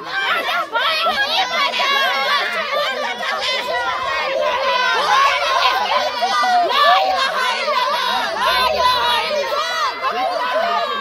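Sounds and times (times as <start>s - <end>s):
crowd of women shouting slogans: 0.0s - 11.0s.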